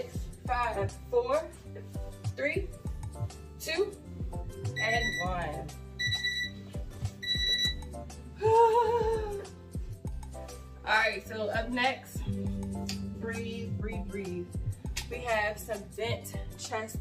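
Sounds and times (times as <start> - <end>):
background music: 0.0 - 17.0
short electronic timer beeps: 6.0 - 6.6, 7.2 - 7.9.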